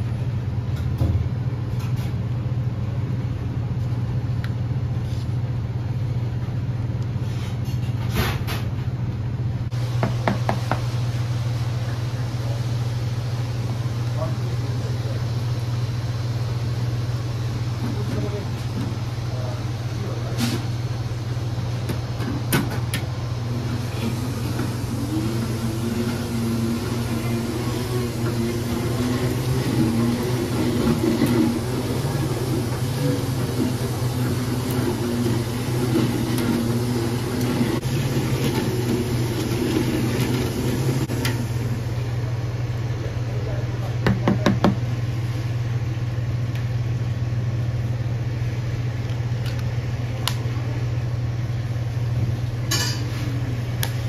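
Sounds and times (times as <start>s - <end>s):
low equipment hum: 0.0s - 54.0s
spindle mixer motor running: 23.4s - 41.9s.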